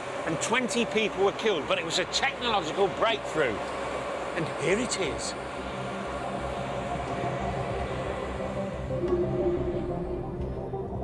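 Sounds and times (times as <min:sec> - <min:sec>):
faint whine: 0:00.0 - 0:11.0
underground train rumbling: 0:00.0 - 0:11.0.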